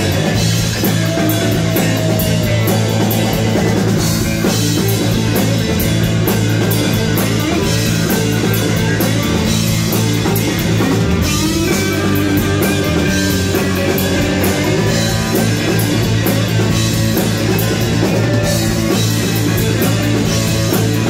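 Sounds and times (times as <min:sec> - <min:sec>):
bass guitar: 0:00.0 - 0:21.0
drum kit with cymbals: 0:00.0 - 0:21.0
electric guitars: 0:00.0 - 0:21.0.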